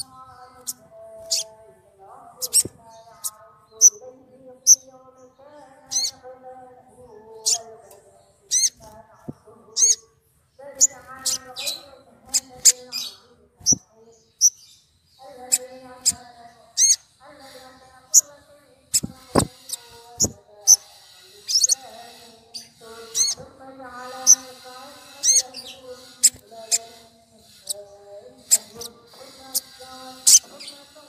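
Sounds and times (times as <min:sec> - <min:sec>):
buzzy bird phrases: 0:00.0 - 0:31.0
sharp bird clicks: 0:02.4 - 0:03.9, 0:12.3 - 0:13.0, 0:13.6 - 0:13.8, 0:15.5 - 0:16.2, 0:18.9 - 0:21.9, 0:25.2 - 0:26.9, 0:28.4 - 0:30.7
bird chirps and whistles: 0:10.8 - 0:13.8, 0:18.9 - 0:21.9, 0:22.5 - 0:23.4, 0:28.4 - 0:30.8.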